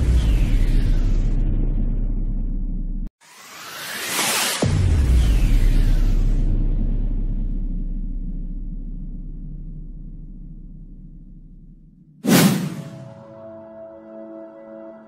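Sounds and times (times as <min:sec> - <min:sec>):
rising whoosh: 0:12.2 - 0:13.4.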